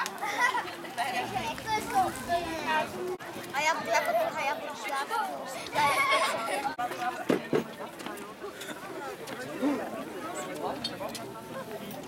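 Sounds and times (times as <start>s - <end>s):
children talking and calling out: 0.0s - 7.3s.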